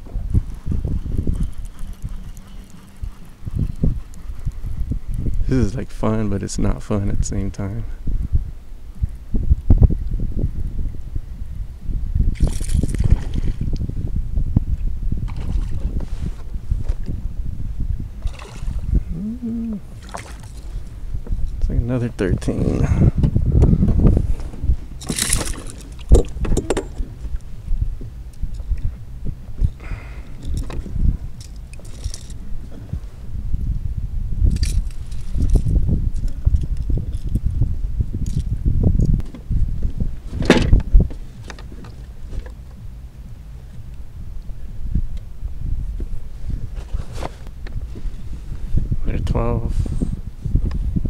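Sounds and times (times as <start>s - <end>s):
steady low rumble: 0.0s - 51.0s.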